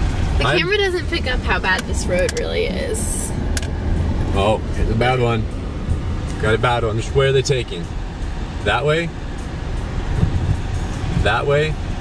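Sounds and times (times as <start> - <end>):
tyres rumbling on rough road: 0.0 - 12.0
car bumps: 10.1 - 11.4.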